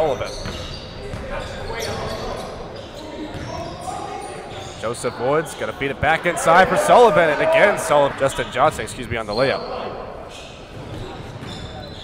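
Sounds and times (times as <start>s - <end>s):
basketball bouncing on hardwood: 3.3s - 3.5s.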